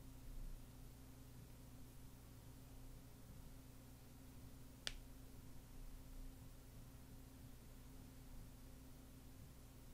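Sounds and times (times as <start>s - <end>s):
faint steady low hum: 0.0s - 9.9s.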